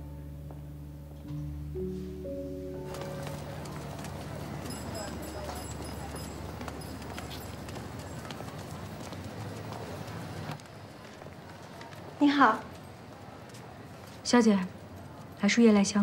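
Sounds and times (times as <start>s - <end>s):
footsteps on pavement: 2.8s - 15.4s
crowd chatter: 2.8s - 16.0s.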